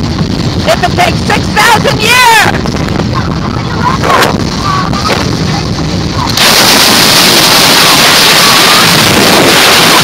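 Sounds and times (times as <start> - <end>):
wind blasting microphone: 0.0 - 10.0.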